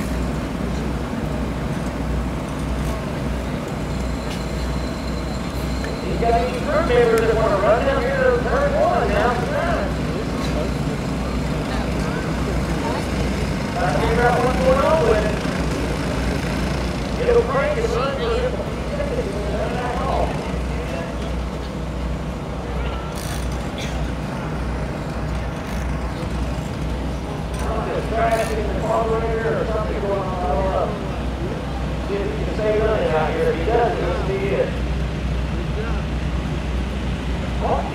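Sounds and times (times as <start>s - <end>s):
indistinct voices talking: 2.9s - 34.8s.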